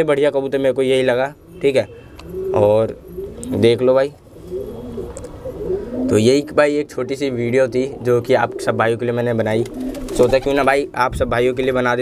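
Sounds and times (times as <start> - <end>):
pigeons cooing: 1.3 - 11.1.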